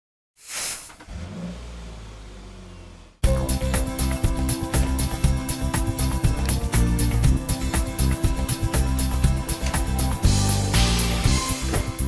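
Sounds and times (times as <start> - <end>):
short whoosh: 0.4 - 1.1
low vehicle engine rumble: 0.9 - 5.3
loud music with a beat: 3.2 - 12.0.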